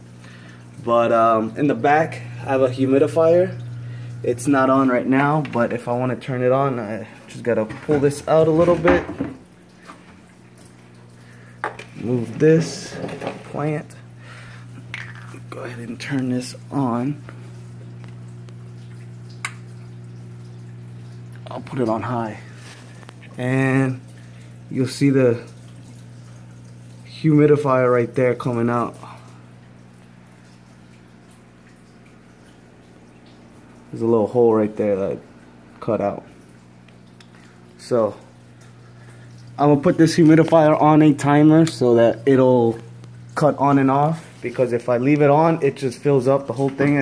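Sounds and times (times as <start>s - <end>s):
water pump humming: 0.0s - 47.0s.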